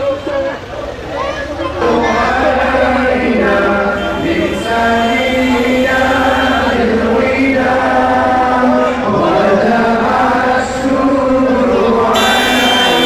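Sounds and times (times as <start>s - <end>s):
men chanting: 1.7s - 13.0s.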